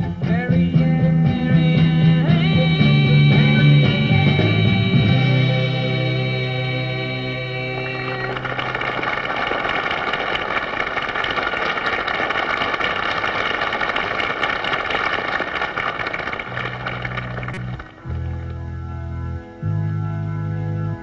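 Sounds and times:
studio audience applauding and cheering: 7.5s - 18.2s
sustained keyboard chord: 16.6s - 21.0s.

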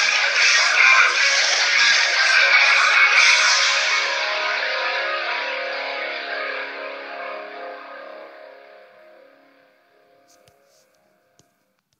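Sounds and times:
distorted electric guitar chord: 0.0s - 10.4s.

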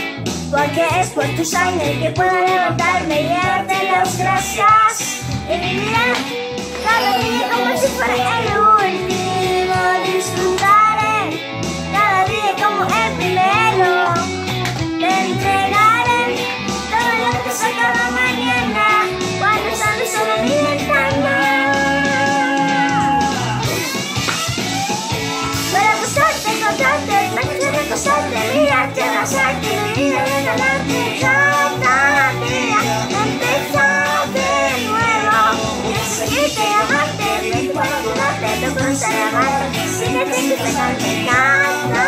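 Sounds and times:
recorded pop music with guitar: 0.0s - 42.0s
girl singing: 0.5s - 22.8s, 25.7s - 42.0s.

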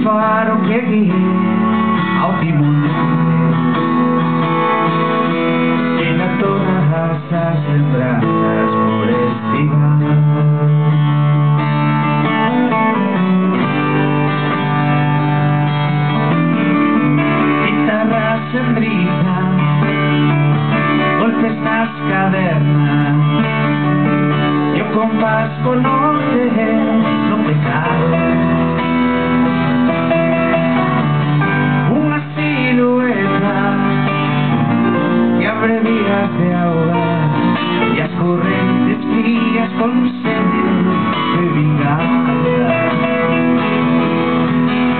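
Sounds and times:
acoustic guitars playing: 0.0s - 44.9s.

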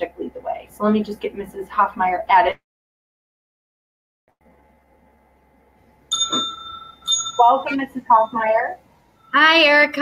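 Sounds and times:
electronic bell-like chime: 6.1s - 9.6s.

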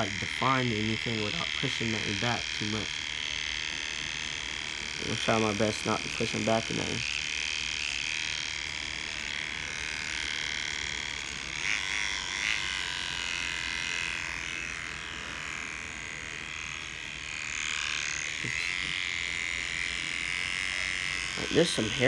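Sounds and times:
hair trimmer buzzing: 0.0s - 22.0s.

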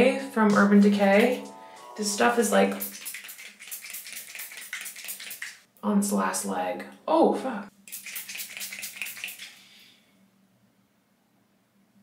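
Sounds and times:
spray bottle sputtering spritzes: 2.7s - 5.6s, 7.9s - 9.6s.

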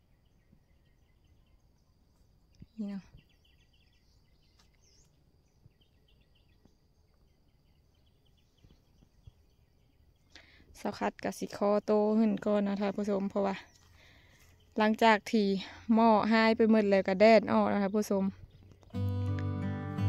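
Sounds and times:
distant birds chirping: 0.0s - 19.0s.

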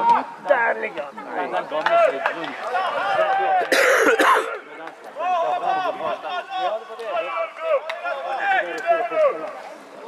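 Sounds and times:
players and spectators calling out: 0.0s - 10.0s
loud rough cough: 3.7s - 4.6s.

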